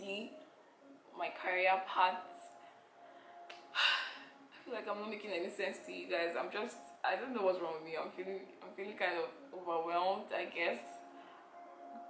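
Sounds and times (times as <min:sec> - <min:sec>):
woman speaking: 0:00.0 - 0:00.3, 0:01.2 - 0:02.4, 0:03.8 - 0:11.0.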